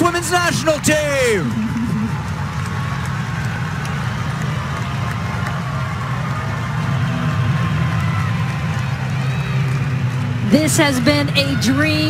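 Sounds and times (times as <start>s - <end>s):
scattered clapping: 0.0s - 11.2s
crowd low rumble: 0.0s - 12.0s.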